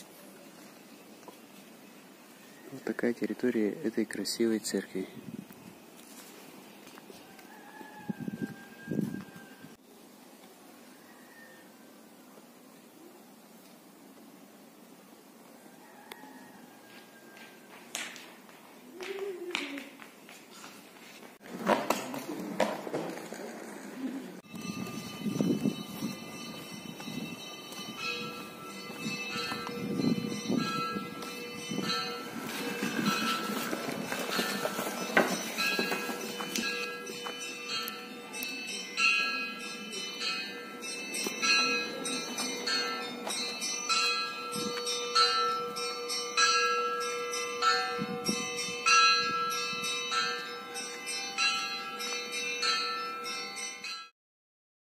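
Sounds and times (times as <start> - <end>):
ringing bell melody: 24.5 - 54.1.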